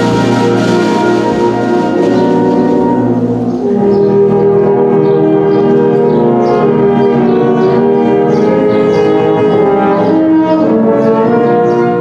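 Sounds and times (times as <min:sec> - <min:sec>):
concert band sustained chords: 0:00.0 - 0:12.0.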